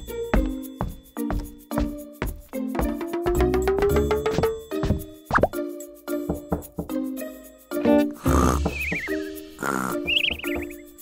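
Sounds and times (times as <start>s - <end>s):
light children's music: 0.0s - 11.0s
cartoon snoring: 8.2s - 8.8s, 9.6s - 10.0s.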